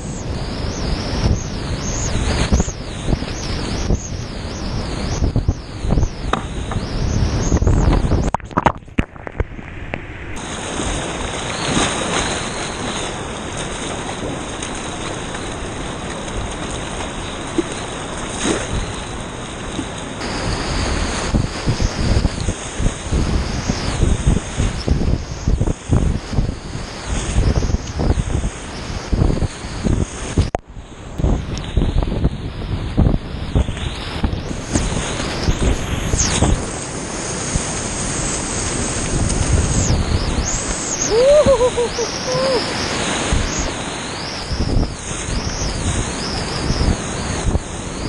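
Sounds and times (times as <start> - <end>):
whitewater rapids rushing: 40.5 - 45.6.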